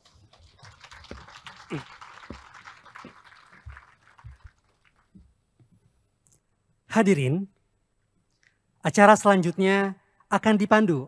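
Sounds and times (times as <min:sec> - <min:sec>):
faint audience applause: 0:00.0 - 0:05.2.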